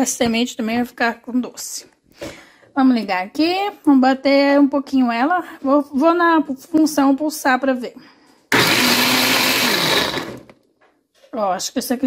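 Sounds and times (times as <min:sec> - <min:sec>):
electric blender chopping: 0:08.5 - 0:10.6.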